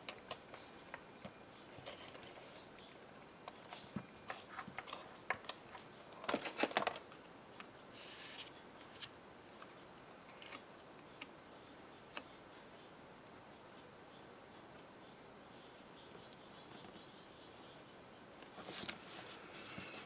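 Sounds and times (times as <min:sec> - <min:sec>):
soft hiss: 0:00.0 - 0:20.0.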